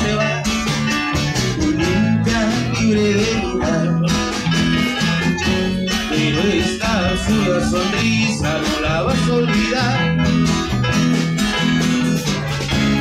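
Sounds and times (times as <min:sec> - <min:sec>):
live band playing: 0:00.0 - 0:13.0
strummed guitar: 0:00.0 - 0:13.0.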